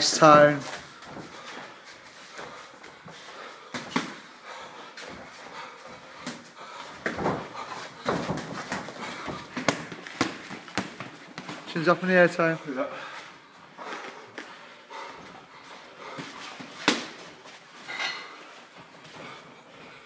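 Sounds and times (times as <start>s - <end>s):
hard breathing: 0.7s - 10.2s, 12.5s - 20.0s
boxing gloves thudding: 3.7s - 4.3s, 6.2s - 11.7s, 16.2s - 17.4s.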